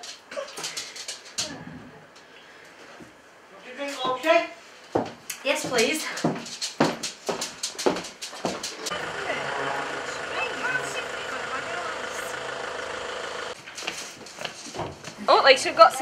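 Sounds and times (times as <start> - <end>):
engine humming: 8.8 - 13.6.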